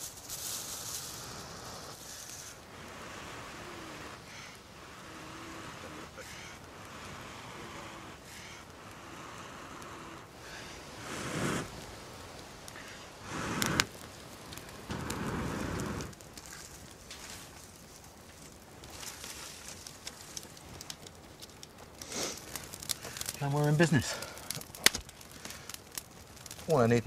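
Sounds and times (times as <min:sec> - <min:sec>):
person blowing on ember: 0:00.0 - 0:11.8, 0:12.8 - 0:13.9, 0:14.9 - 0:16.2
dry bracken crackling and rustling: 0:00.0 - 0:27.0.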